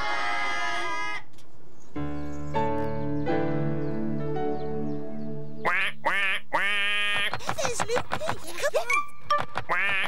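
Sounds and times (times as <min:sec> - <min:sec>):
held piano chord: 0:02.0 - 0:05.6
cartoon duck quacking: 0:05.6 - 0:08.0, 0:09.7 - 0:10.0.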